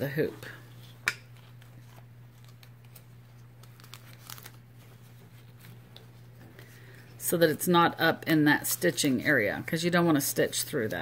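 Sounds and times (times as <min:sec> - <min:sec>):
tape crinkling and rustling: 0:00.7 - 0:07.2.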